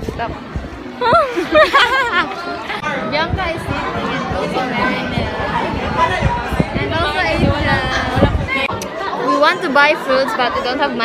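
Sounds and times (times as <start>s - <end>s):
women chattering: 0.0s - 11.0s
women laughing: 1.0s - 2.8s.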